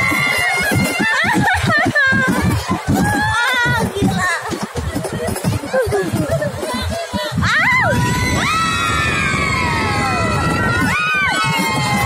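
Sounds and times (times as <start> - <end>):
riders laughing and shrieking: 0.0 - 12.0
roller coaster rumble: 0.0 - 12.0.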